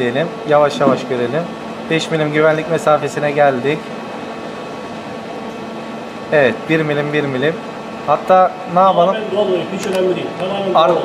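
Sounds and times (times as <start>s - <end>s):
machine hum: 0.0s - 11.0s.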